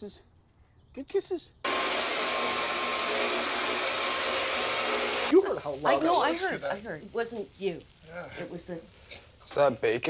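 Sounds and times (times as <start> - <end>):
vacuum cleaner running: 1.7 - 6.2.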